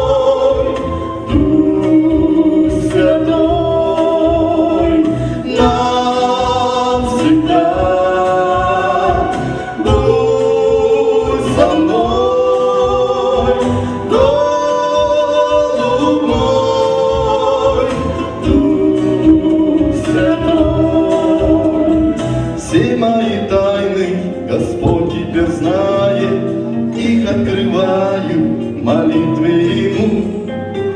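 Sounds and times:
man and woman singing duet: 0:00.0 - 0:30.9
musical accompaniment with low beat: 0:00.0 - 0:30.9.

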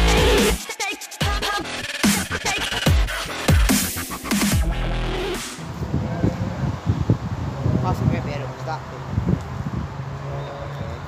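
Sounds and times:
electronic background music: 0:00.0 - 0:05.8.

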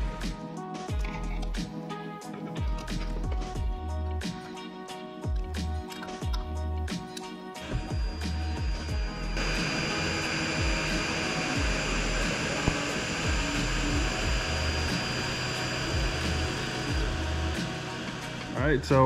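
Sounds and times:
music with bass beat: 0:00.0 - 0:19.0
cooling fan rushing with high whine: 0:07.8 - 0:18.6.

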